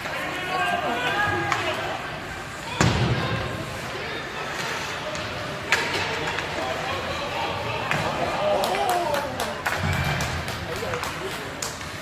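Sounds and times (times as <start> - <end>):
hockey sticks and puck clacking: 0.0 - 12.0
indistinct spectators' voices: 0.0 - 12.0.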